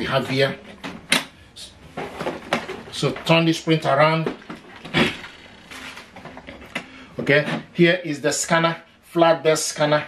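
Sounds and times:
plastic printer scraping and handling: 0:02.0 - 0:03.4, 0:04.3 - 0:06.7.

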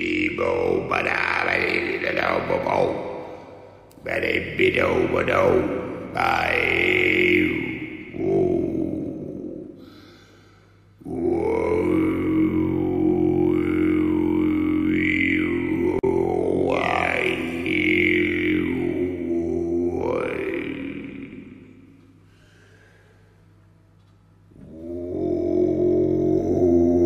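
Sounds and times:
didgeridoo drone: 0:00.0 - 0:09.9, 0:11.0 - 0:22.1, 0:24.5 - 0:27.0.

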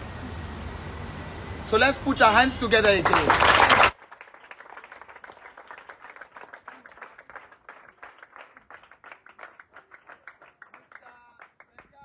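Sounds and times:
children clapping: 0:02.8 - 0:12.0.

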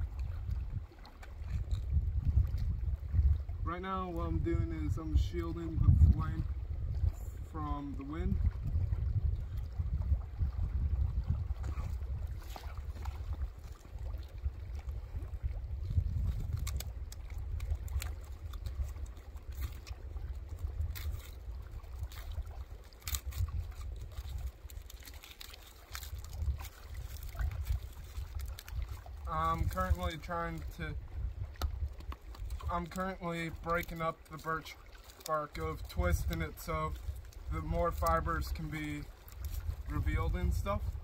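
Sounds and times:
wind buffeting microphone: 0:00.0 - 0:34.0, 0:35.5 - 0:41.0
bark and tinder crackling: 0:16.2 - 0:30.7.

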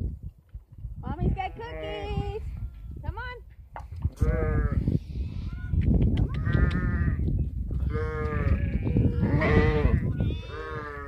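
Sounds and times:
sheep bleating: 0:07.9 - 0:11.0.

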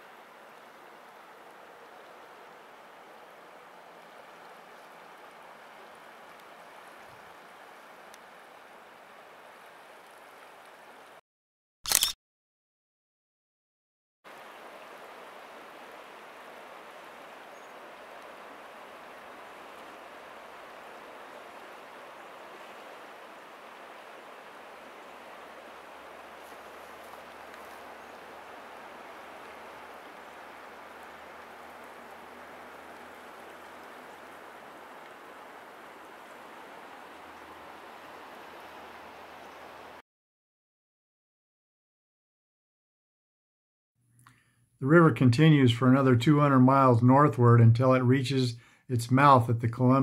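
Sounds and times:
river water rushing: 0:00.0 - 0:11.2, 0:14.3 - 0:40.0.

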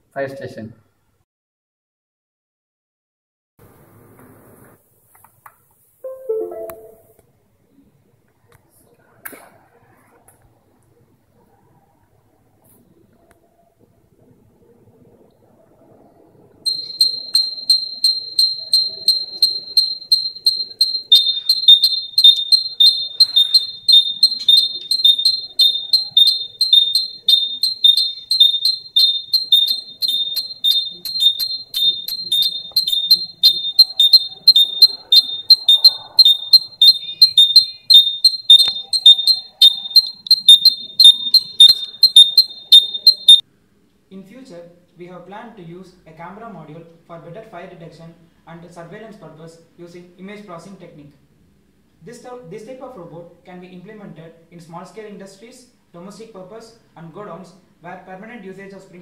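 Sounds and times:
high-pitched buzzer alarm beeping: 0:16.7 - 0:43.4
lower alarm tone: 0:16.7 - 0:43.4.

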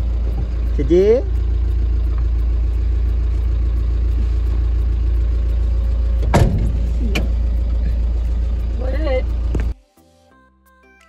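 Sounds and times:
car engine rumbling: 0:00.0 - 0:09.8.

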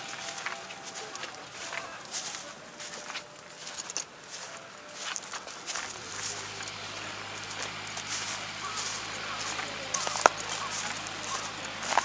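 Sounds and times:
footsteps crunching through stubble: 0:00.0 - 0:12.0
steady low hum: 0:00.0 - 0:12.0.

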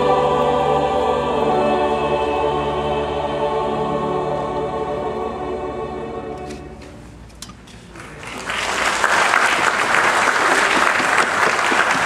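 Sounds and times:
choir and orchestra sustained chord: 0:00.0 - 0:07.0.

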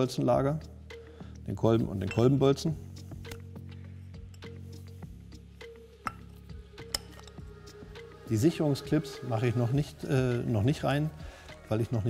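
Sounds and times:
quiet background music: 0:00.0 - 0:12.0
light metallic clicks: 0:06.0 - 0:07.5.

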